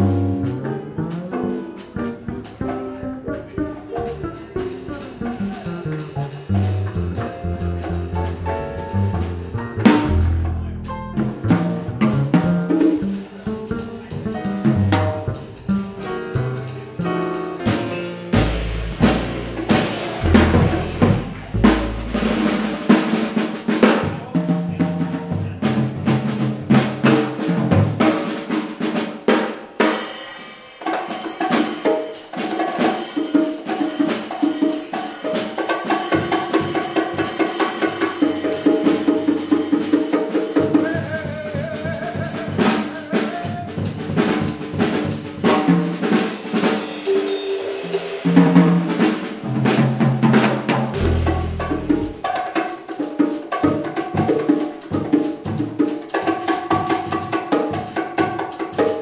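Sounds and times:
live jazz combo playing: 0.0 - 30.1, 31.1 - 59.0
drum kit: 0.0 - 59.0
deep plucked bass notes: 4.0 - 12.3, 18.4 - 22.8, 51.0 - 52.2.

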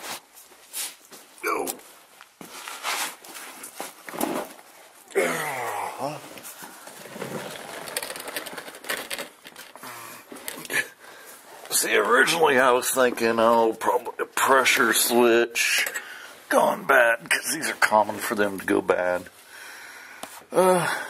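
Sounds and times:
rustling and scraping: 0.0 - 5.0, 6.2 - 14.0
man murmuring: 1.4 - 1.9, 5.1 - 6.4, 20.5 - 21.0.

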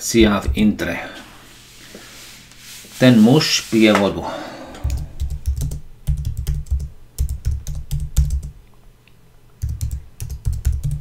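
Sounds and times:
keyboard typing clicks: 4.8 - 8.5, 9.6 - 11.0.

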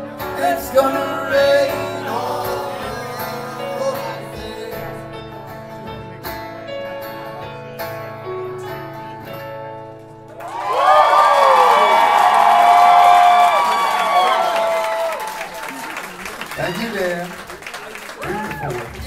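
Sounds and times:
acoustic guitar and keyboard chords: 0.0 - 10.4
crowd cheering and applause: 10.3 - 19.0.

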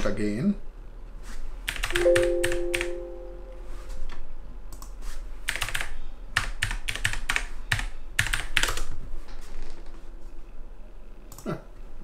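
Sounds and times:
typing on computer keyboard: 1.7 - 2.9, 5.4 - 9.0.

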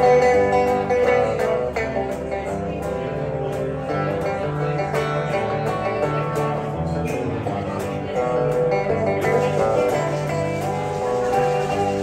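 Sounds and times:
electric guitars playing slow melody: 0.0 - 12.0.

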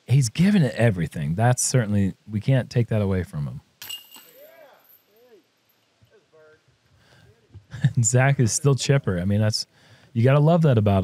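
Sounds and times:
chains jingling: 3.8 - 5.2
disc hitting basket chains: 3.8 - 5.3.

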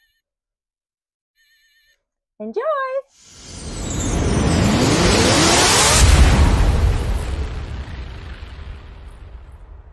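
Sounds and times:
rising whoosh: 3.2 - 9.9
deep boom: 3.3 - 9.9.

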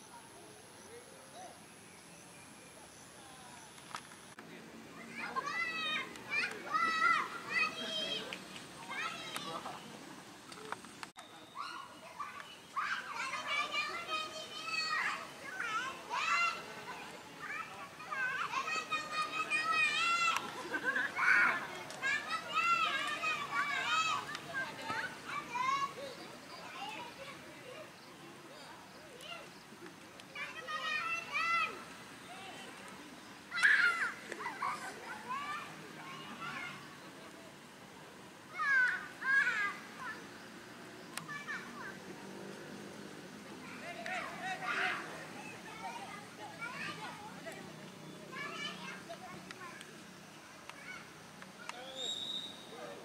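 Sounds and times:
open-air ambience: 0.0 - 53.0
children shouting: 5.0 - 9.8, 11.3 - 27.9, 30.4 - 32.8, 33.5 - 37.0, 38.5 - 40.4, 41.0 - 42.5, 43.5 - 49.9.

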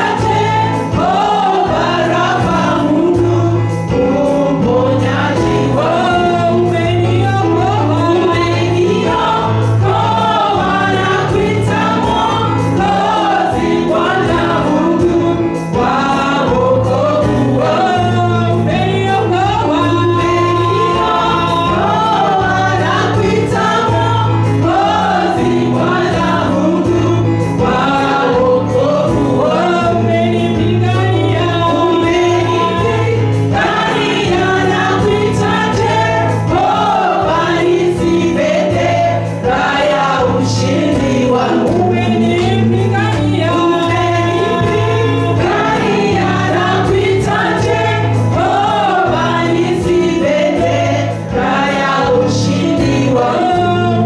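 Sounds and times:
choir singing: 0.0 - 54.0
instrumental accompaniment with beat: 0.0 - 54.0
lead singer on microphone: 0.0 - 54.0.

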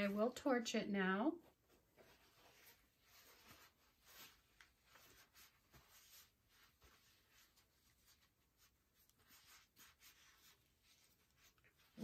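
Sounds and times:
soft rustles: 1.3 - 12.0.

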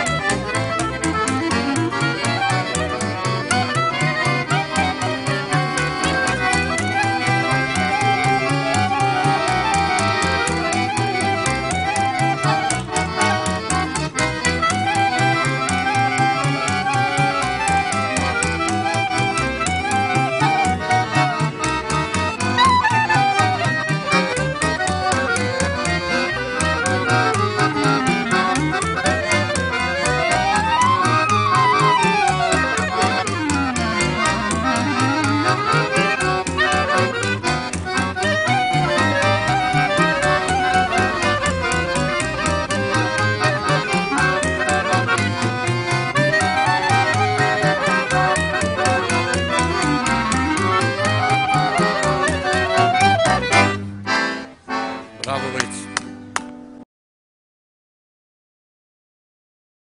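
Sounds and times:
clarinet lead: 0.0 - 55.9
strummed acoustic guitar: 0.0 - 56.3
plucked double bass: 0.0 - 56.6
accordion: 0.0 - 56.8.

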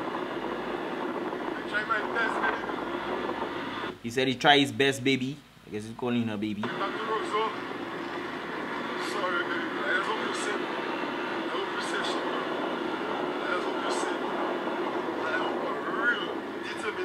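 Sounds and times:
wind noise on microphone: 0.0 - 4.0, 10.6 - 16.8
man talking into a phone: 1.6 - 2.8, 4.0 - 7.6, 9.0 - 10.7, 11.4 - 12.5, 13.2 - 14.3, 15.2 - 17.0.

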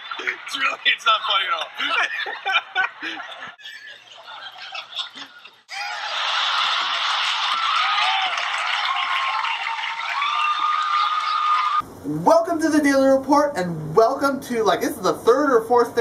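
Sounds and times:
audience laughter and applause: 0.0 - 11.8
audience whoops: 5.7 - 11.8.

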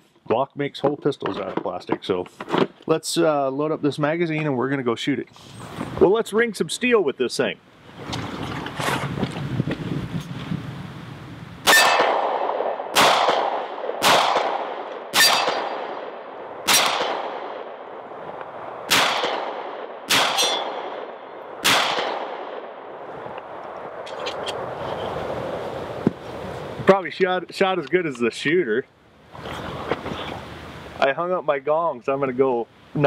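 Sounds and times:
pistol shots: 11.6 - 18.0, 18.9 - 23.0
bullet ringing on steel target: 20.2 - 20.8.

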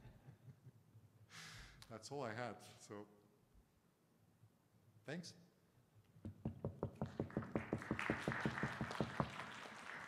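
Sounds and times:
sharp claps close to microphone: 6.5 - 10.0
audience applauding: 7.0 - 10.0.

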